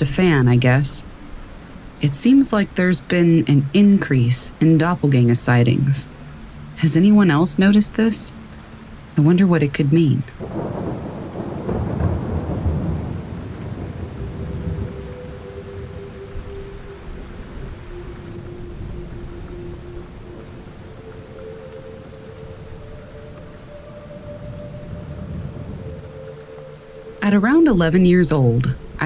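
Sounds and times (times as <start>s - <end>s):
steady rain: 0.0s - 29.0s
thunder rumble: 10.4s - 29.0s.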